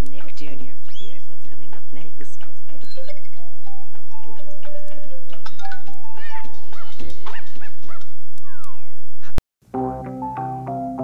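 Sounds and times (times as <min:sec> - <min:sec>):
cartoon dog yipping and barking: 0:06.2 - 0:09.0
bright promo music: 0:09.7 - 0:11.0.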